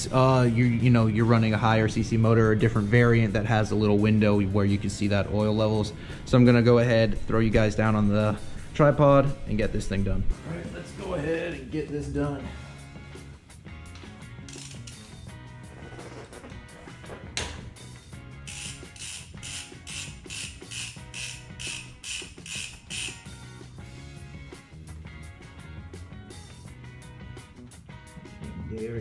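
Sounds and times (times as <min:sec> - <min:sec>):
background music: 0:00.0 - 0:29.0
socket ratchet clicking: 0:14.4 - 0:15.2, 0:18.4 - 0:23.4.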